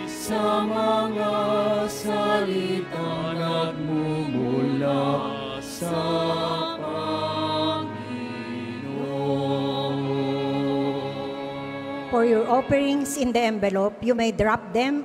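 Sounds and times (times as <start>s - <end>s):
slow hymn singing: 0.0s - 12.7s.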